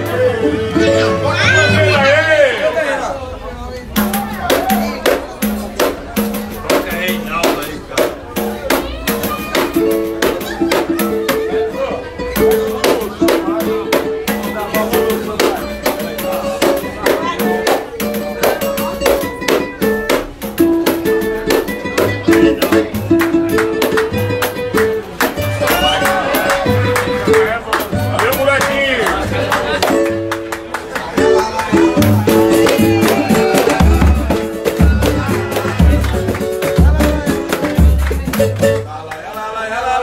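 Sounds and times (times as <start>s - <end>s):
plucked string notes: 0.0s - 2.8s, 3.8s - 39.0s
hand drums beating: 3.8s - 38.9s.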